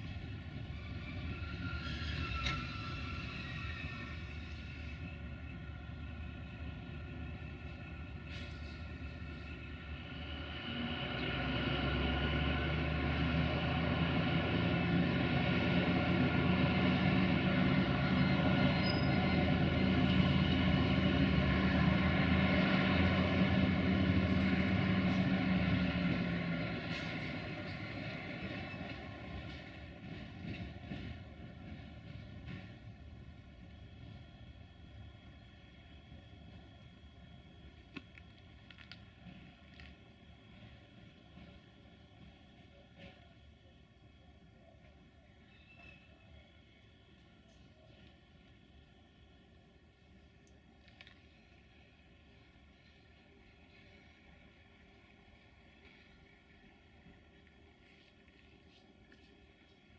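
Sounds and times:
diesel locomotive engine running: 0.0s - 59.9s.

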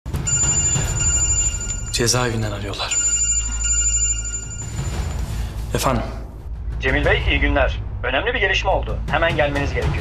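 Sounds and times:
electronic phone ringtone: 0.1s - 5.3s.

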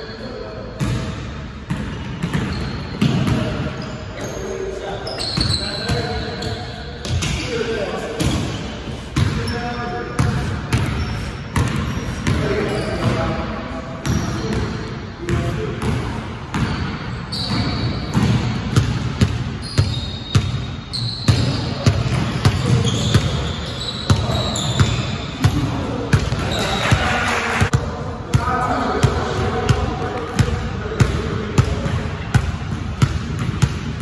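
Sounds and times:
basketball bouncing on wooden floor: 30.4s - 34.0s.

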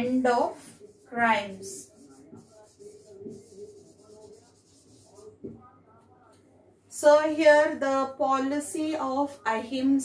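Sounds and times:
marker pen squeaking on whiteboard: 0.6s - 5.6s.

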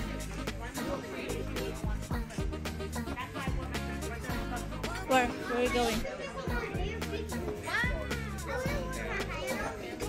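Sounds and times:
diners chattering: 0.0s - 10.0s
music playing: 0.0s - 10.0s
child's high voice: 5.6s - 10.0s.

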